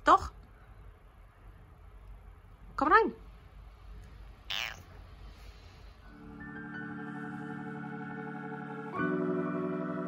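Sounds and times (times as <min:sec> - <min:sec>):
cat meowing: 0:04.5 - 0:04.9.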